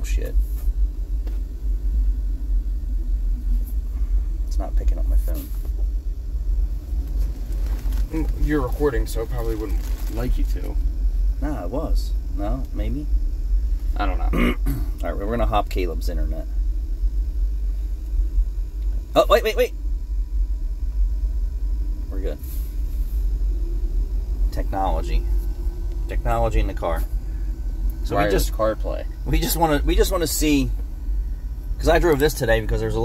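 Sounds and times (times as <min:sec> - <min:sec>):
low rumble inside car cabin: 0:00.0 - 0:33.0.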